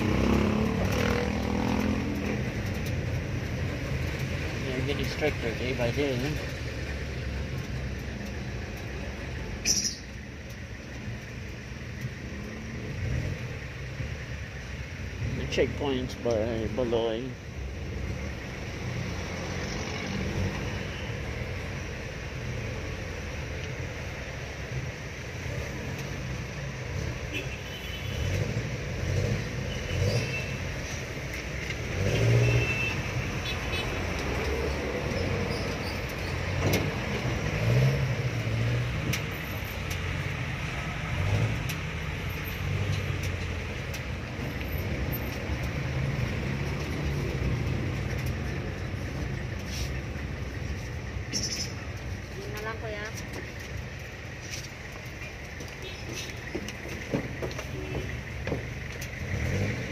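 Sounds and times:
road traffic: 0:00.0 - 0:59.9.

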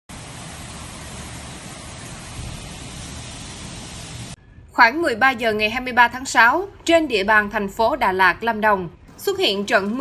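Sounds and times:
heavy rain hiss: 0:00.0 - 0:04.4
deep thunder rumble: 0:00.8 - 0:04.7.

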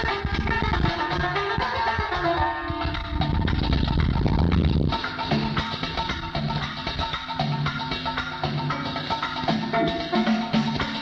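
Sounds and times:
band holding notes: 0:00.0 - 0:11.0
fast drum roll: 0:00.0 - 0:11.0.

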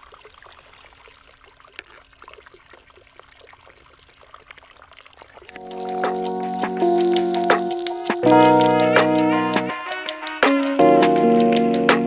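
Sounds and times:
water trickling into a basin: 0:00.0 - 0:05.7
background music: 0:05.6 - 0:12.0.

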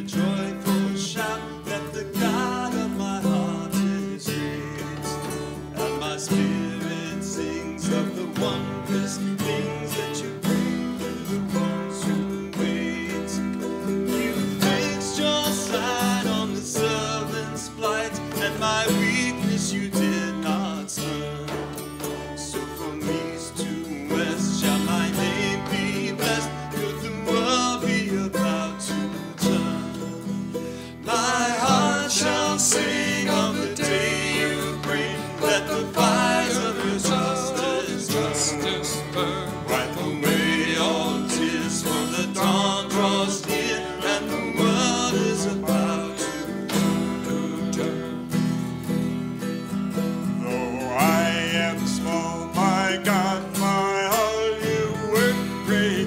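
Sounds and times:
mandolin picking: 0:00.0 - 0:56.0
strummed acoustic guitar: 0:00.0 - 0:56.0.

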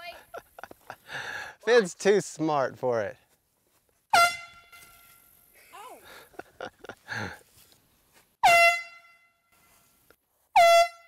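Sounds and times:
air horn blast: 0:04.1 - 0:05.1, 0:08.4 - 0:09.6, 0:10.5 - 0:11.0.

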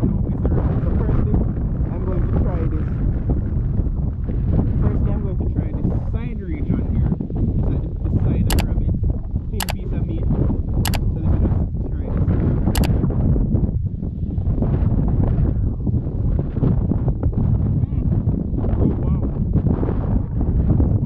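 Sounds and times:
wind buffeting microphone: 0:00.0 - 0:21.0
sharp clicks: 0:08.5 - 0:08.7, 0:09.6 - 0:09.8.

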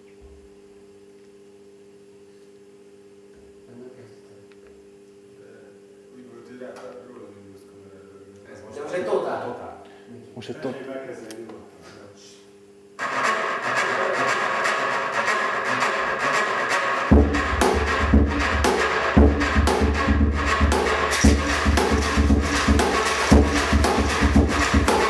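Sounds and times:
deep drum beats: 0:13.2 - 0:25.0.

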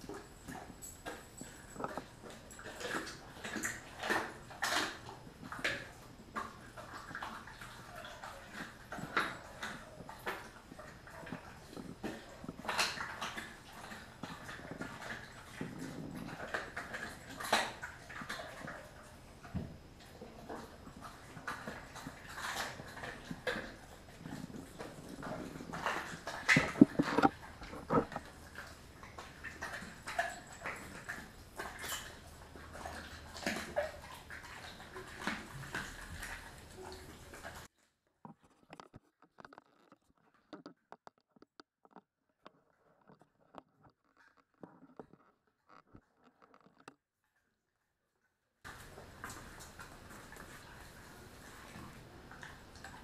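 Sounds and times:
dog chewing bone: 0:00.0 - 0:37.6.

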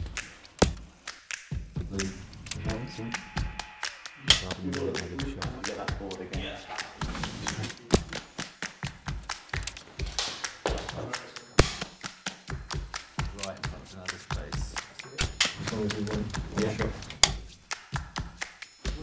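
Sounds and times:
quiet background music: 0:00.0 - 0:19.0.

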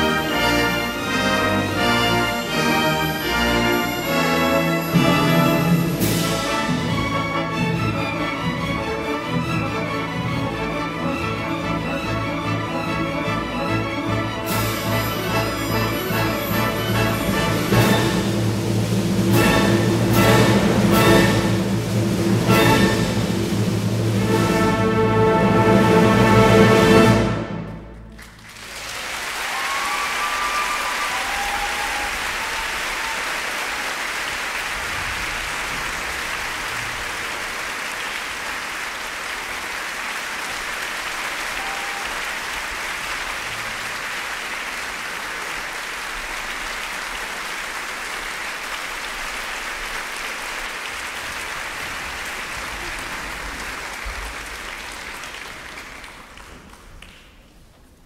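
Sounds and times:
audience applause: 0:14.0 - 0:24.5, 0:27.7 - 0:57.7.

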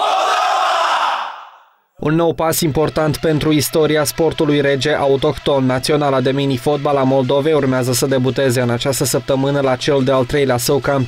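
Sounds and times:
men shouting together: 0:00.0 - 0:01.6.

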